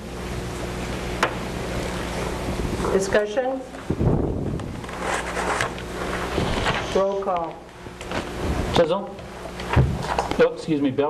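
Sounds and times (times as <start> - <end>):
room noise hum and hiss: 0.0 - 11.0.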